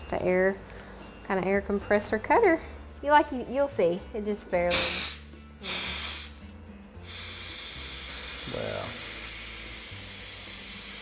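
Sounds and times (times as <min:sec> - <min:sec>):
compressed air hissing: 0:04.6 - 0:11.0.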